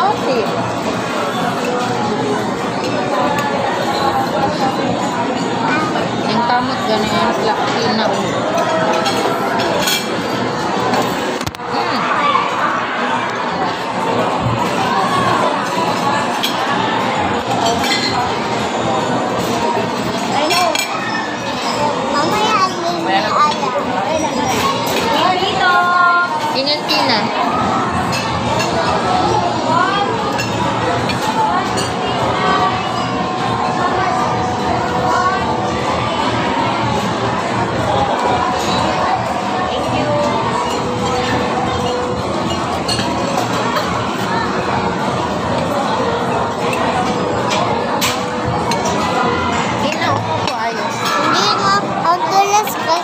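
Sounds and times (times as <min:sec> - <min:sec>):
babble of voices: 0:00.0 - 0:53.0
busy restaurant din: 0:00.0 - 0:53.0
children's voices: 0:05.2 - 0:06.4, 0:20.3 - 0:26.4, 0:48.9 - 0:53.0.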